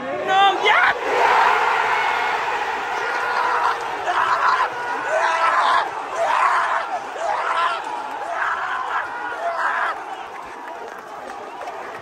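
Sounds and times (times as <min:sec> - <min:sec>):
fans shouting: 0:00.0 - 0:12.0
football crowd roaring and cheering: 0:00.0 - 0:12.0.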